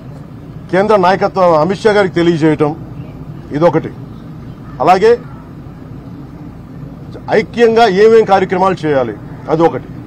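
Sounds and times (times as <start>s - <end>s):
low rumble of outdoor background: 0.0s - 10.0s.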